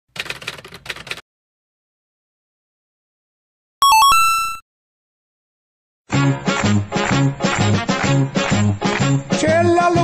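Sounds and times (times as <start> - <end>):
typewriter key strikes: 0.2 - 1.2.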